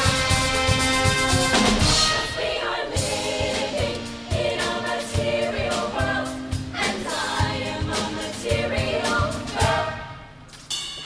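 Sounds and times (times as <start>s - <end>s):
band playing: 0.0s - 7.9s
steady drum beat: 0.0s - 10.0s
choir singing in harmony: 0.0s - 10.4s.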